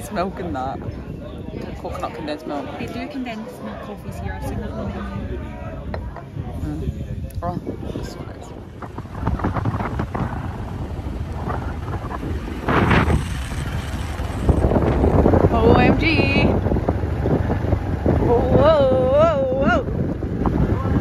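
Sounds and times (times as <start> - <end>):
wind buffeting microphone: 0.0 - 21.0
motorbike rumble: 5.8 - 21.0.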